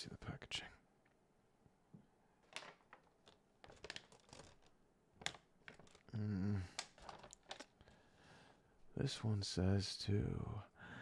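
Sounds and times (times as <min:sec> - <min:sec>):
packet crinkles and clicks: 0:02.4 - 0:06.1, 0:06.7 - 0:08.0.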